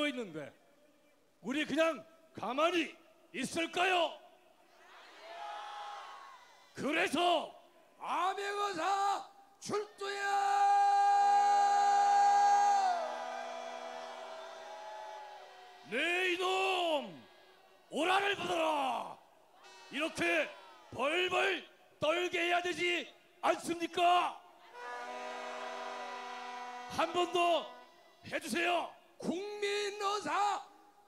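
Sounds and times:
man shouting through a microphone: 6.8 - 13.2, 15.8 - 17.3, 17.9 - 24.4, 26.4 - 30.7.

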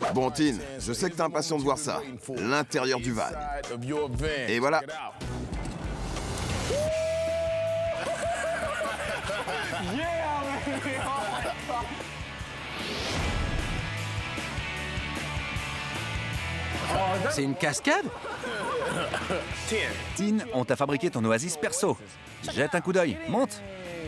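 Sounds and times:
background music with steady beat: 0.0 - 24.0
excited voices: 6.7 - 12.0, 16.7 - 24.0
rising whoosh: 12.5 - 14.2.

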